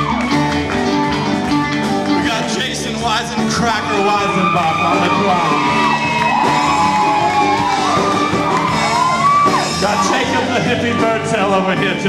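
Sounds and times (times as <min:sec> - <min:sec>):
crowd whooping: 0:00.0 - 0:01.1, 0:03.4 - 0:12.0
live rock band playing: 0:00.0 - 0:12.0.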